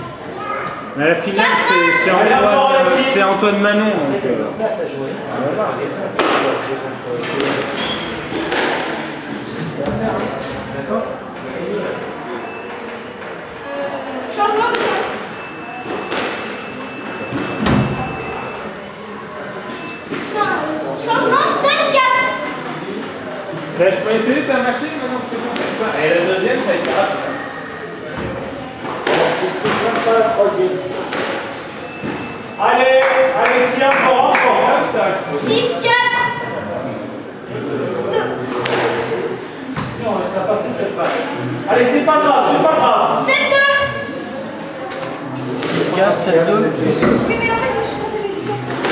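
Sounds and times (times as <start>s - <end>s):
murmur of voices: 0.0s - 48.9s
people talking indistinctly: 0.0s - 48.9s.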